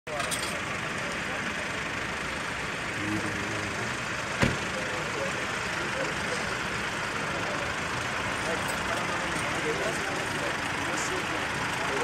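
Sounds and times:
road traffic engines: 0:00.1 - 0:12.0.

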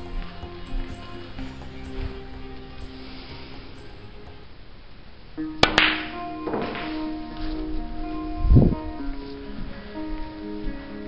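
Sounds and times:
background music: 0:00.0 - 0:11.0
billiard balls clicking: 0:05.6 - 0:07.0
cue tip striking ball: 0:05.6 - 0:07.2.

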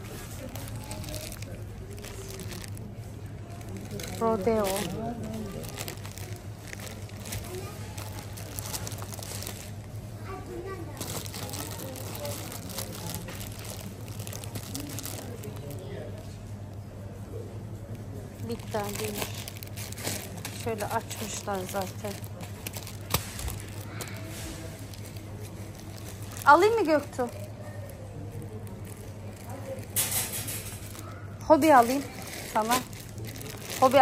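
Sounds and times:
faint voices: 0:00.0 - 0:34.0
steady low hum: 0:00.0 - 0:34.0.

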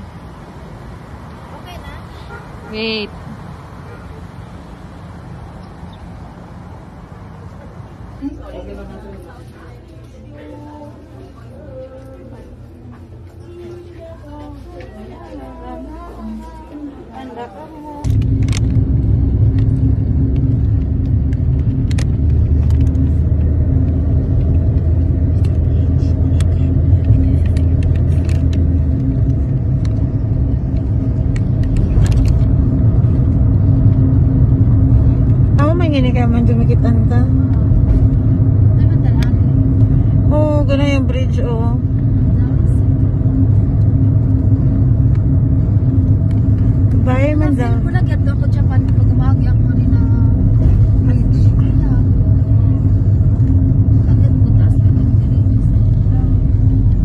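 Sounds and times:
car engine and tyres on road: 0:00.0 - 0:10.8, 0:17.8 - 0:57.0.

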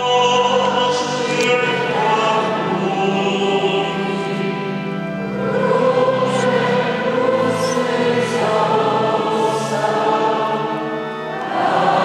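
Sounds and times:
church choir singing a hymn: 0:00.0 - 0:12.0.

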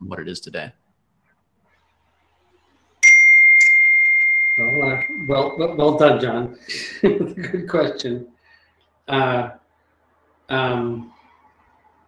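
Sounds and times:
bright bell-like ding: 0:03.0 - 0:06.1.

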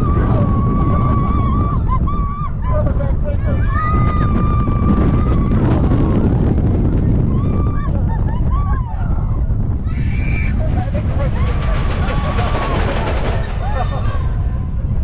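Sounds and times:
roller coaster train rolling: 0:00.0 - 0:15.0
wind rushing over microphone: 0:00.0 - 0:15.0
riders screaming: 0:09.8 - 0:14.4.

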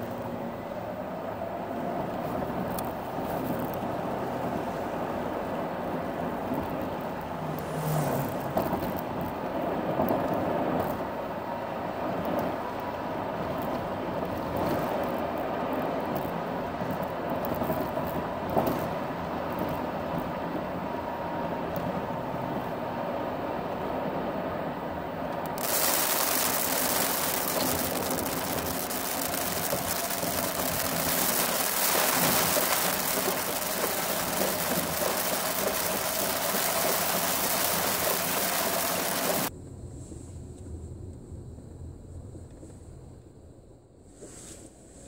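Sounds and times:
road and engine noise: 0:00.0 - 0:45.0
hissing rush: 0:25.6 - 0:39.5.

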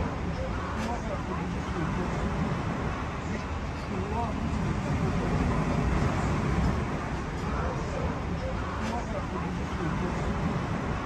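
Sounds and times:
diners chattering: 0:00.0 - 0:11.0
steady low rumble: 0:00.0 - 0:11.0.

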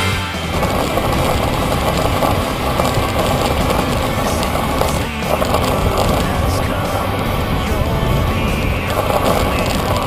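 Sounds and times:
road noise from moving bike: 0:00.0 - 0:10.0
wind rush: 0:00.4 - 0:10.0.

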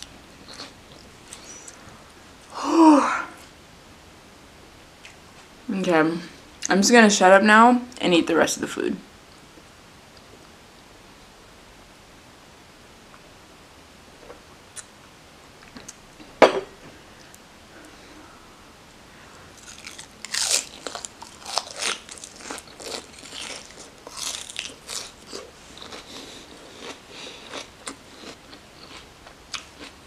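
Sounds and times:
crunching and chewing lettuce: 0:00.0 - 0:01.8, 0:19.6 - 0:30.0.

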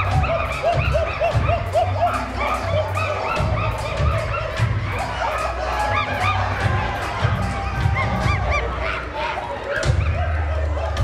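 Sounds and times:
music with steady bass: 0:00.0 - 0:09.2
high hooting calls: 0:00.0 - 0:11.0.

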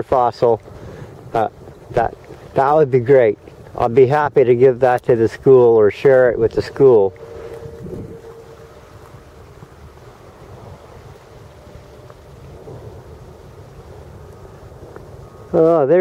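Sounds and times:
faint steady hum: 0:00.0 - 0:16.0
wind buffeting microphone: 0:00.0 - 0:16.0.

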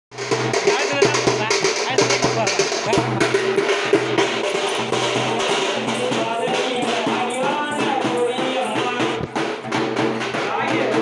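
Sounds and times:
drums in quick rhythm: 0:00.1 - 0:11.0
voices: 0:00.6 - 0:11.0.

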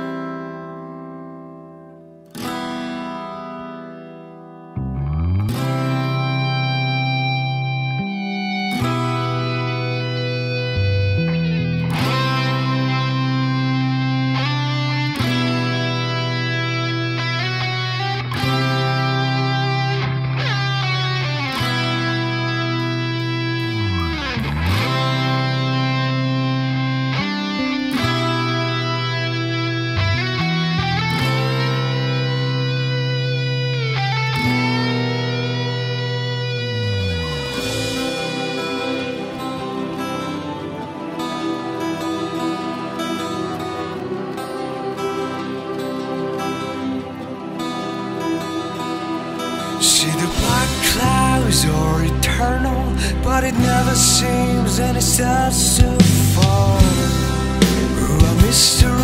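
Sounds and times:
plucked guitar notes: 0:00.0 - 0:59.0
rock band playing: 0:36.0 - 0:53.5, 0:55.1 - 0:59.0.

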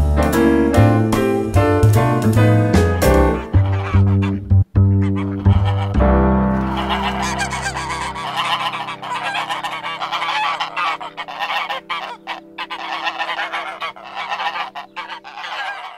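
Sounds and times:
jazz piano and bass chord: 0:00.0 - 0:08.3
geese honking: 0:03.1 - 0:15.9.

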